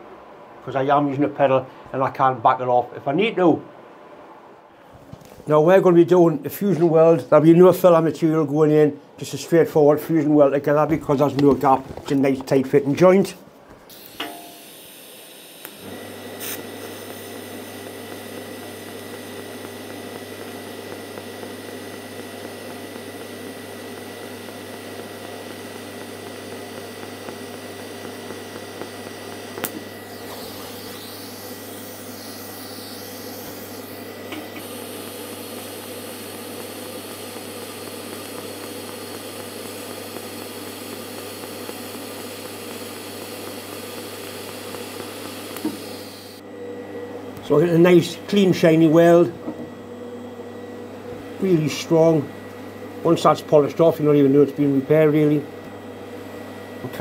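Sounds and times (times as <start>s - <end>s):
welding arc hissing: 13.9s - 46.4s
steady low hum: 16.6s - 43.1s.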